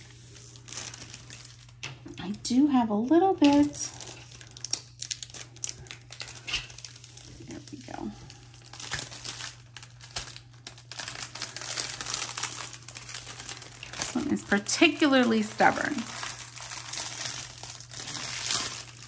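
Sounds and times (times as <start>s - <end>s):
plastic film peeling and crackling: 0.0s - 2.4s, 3.2s - 19.0s.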